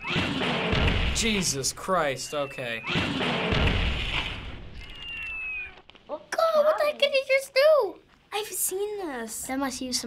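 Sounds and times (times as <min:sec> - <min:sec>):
explosion: 0:00.1 - 0:01.6, 0:02.9 - 0:04.8.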